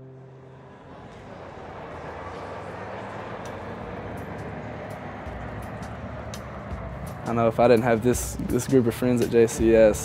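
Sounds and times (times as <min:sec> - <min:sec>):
vehicle driving slowly past: 0:00.0 - 0:10.0.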